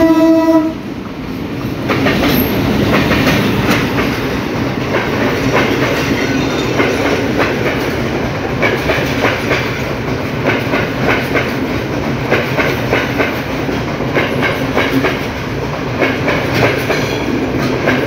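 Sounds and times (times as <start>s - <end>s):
train wheels clattering: 1.4s - 18.0s.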